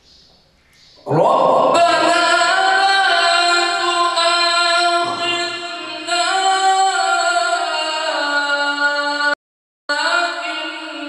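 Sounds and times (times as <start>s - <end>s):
man chanting melodically: 1.0s - 9.3s.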